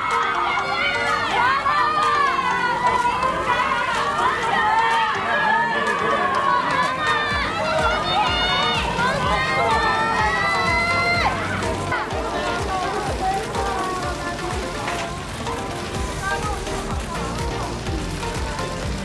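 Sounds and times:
crowd shouting in high voices: 0:00.0 - 0:14.4.

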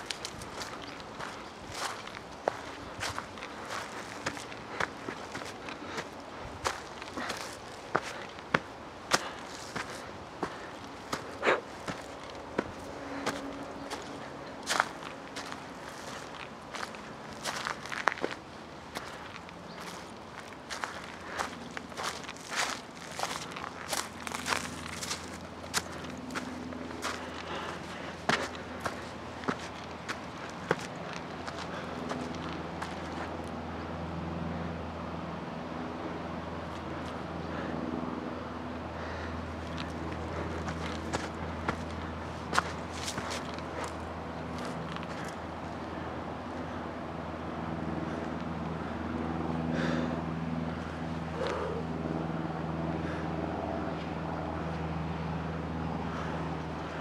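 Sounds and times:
footsteps crunching on dry leaves: 0:00.0 - 0:33.4, 0:39.0 - 0:45.4
steady low hum: 0:00.0 - 0:57.0.

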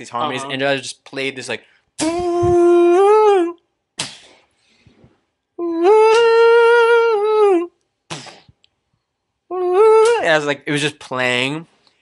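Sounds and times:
man humming: 0:02.0 - 0:03.6, 0:05.6 - 0:07.8, 0:09.5 - 0:10.3
man breathing: 0:04.2 - 0:05.3.

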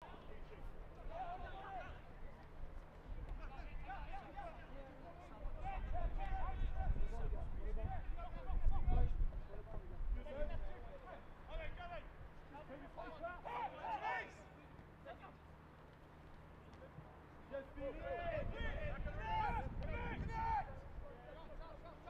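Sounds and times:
men shouting: 0:12.8 - 0:14.5.

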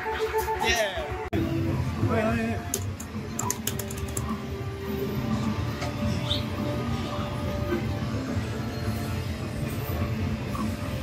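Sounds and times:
amusement arcade noise: 0:00.0 - 0:11.0
music playing: 0:00.0 - 0:11.0.

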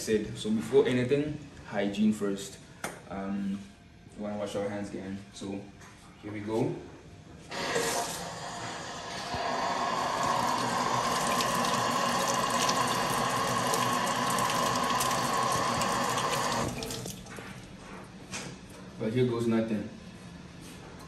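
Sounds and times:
hands washing under water: 0:10.1 - 0:17.7.

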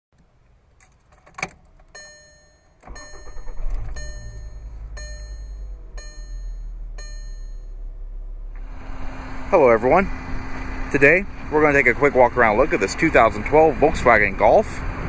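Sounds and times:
car engine starting and idling: 0:00.2 - 0:15.0
dashboard warning chime: 0:01.9 - 0:08.0.

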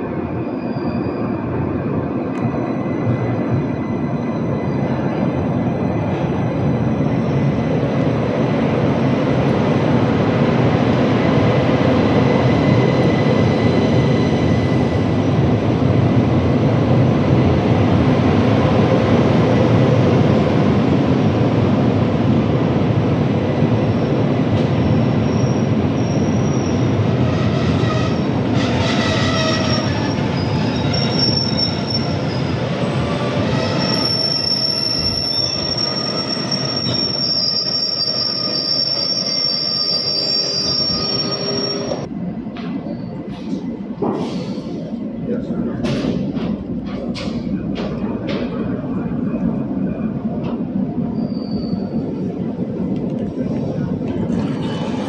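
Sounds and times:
train wheels rumbling on rails: 0:00.0 - 0:55.0
high-pitched wheel squeals: 0:25.2 - 0:32.5, 0:33.5 - 0:42.1, 0:51.1 - 0:52.5.

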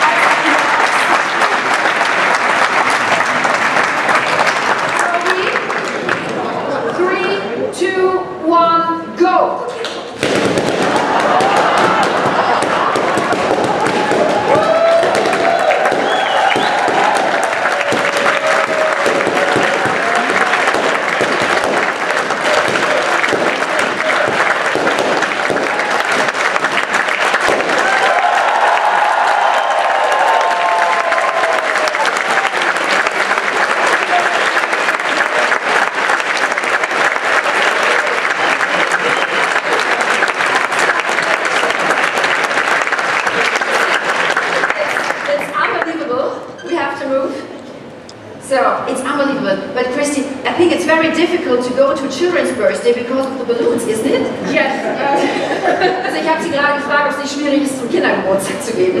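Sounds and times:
audience applauding: 0:00.0 - 0:06.9, 0:10.2 - 0:45.9
cheering voices: 0:00.0 - 0:07.7, 0:10.2 - 0:47.0.

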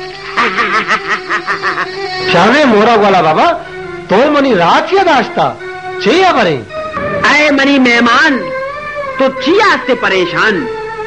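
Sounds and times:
man laughing: 0:00.0 - 0:02.3
background music: 0:00.0 - 0:11.0.

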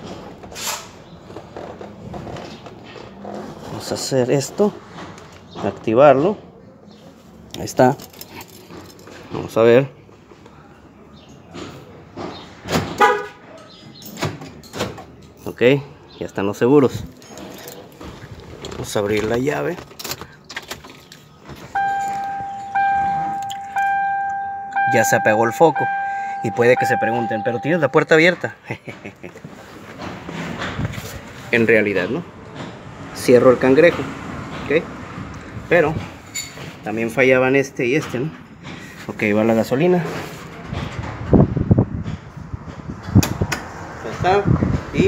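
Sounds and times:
ignition key clicks and rattles: 0:19.2 - 0:28.2
dashboard warning chime: 0:21.8 - 0:28.4.

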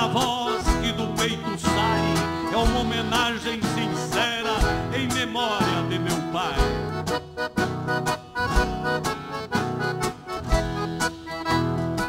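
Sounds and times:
accordion melody: 0:00.0 - 0:12.0
strummed acoustic guitars: 0:00.0 - 0:12.0.

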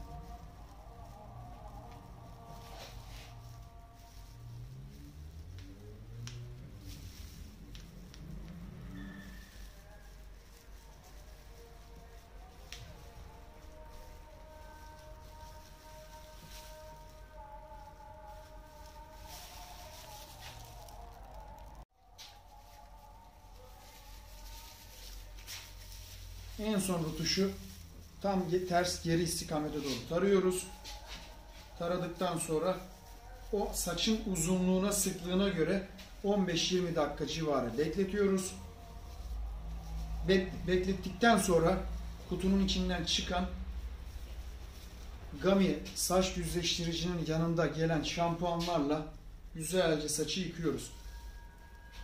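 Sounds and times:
brush brushing and patting hair: 0:00.0 - 0:47.2
faint background music: 0:00.0 - 0:52.0.

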